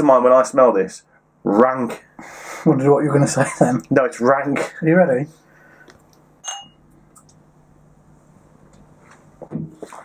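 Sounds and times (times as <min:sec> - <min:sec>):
drinking glasses clinking: 0:06.4 - 0:06.8.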